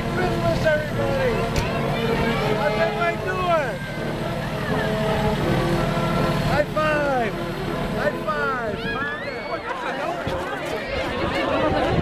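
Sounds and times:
fire engine idling: 0:00.0 - 0:10.2
crowd voices with excited calls: 0:00.0 - 0:12.0.

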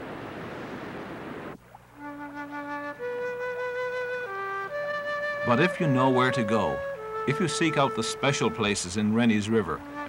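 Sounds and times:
slow music of held notes: 0:01.9 - 0:10.0.

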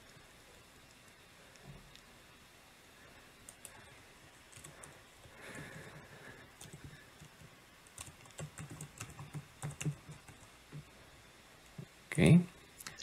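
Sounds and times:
keyboard typing clicks: 0:06.6 - 0:10.9.

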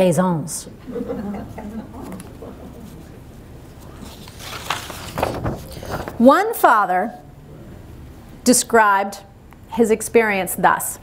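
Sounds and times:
low room noise: 0:00.0 - 0:11.0
soft laughter: 0:00.9 - 0:03.1.

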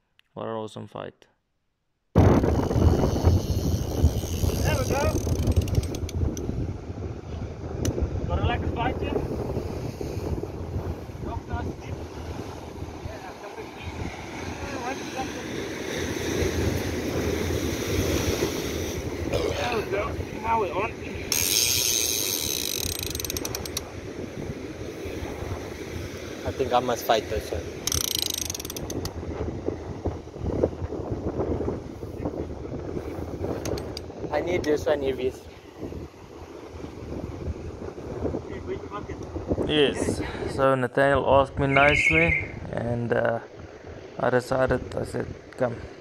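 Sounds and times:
wind buffeting microphone: 0:02.2 - 0:46.0
surf breaking on rocks: 0:09.4 - 0:21.3.

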